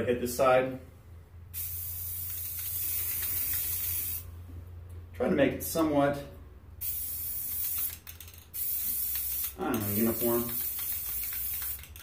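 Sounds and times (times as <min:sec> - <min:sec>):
spray can hissing: 0:01.6 - 0:04.3, 0:06.8 - 0:12.0.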